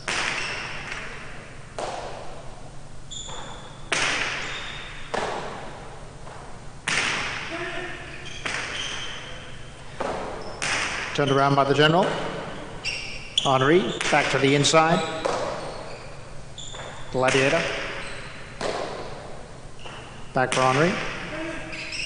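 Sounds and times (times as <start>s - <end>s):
ball cracking against walls: 0.0s - 2.5s, 3.2s - 7.6s, 8.2s - 9.2s, 9.9s - 11.2s, 13.9s - 15.8s, 16.7s - 21.3s
high squeaks: 3.1s - 5.1s, 7.5s - 9.7s, 12.5s - 17.2s, 18.0s - 18.6s, 21.3s - 22.0s.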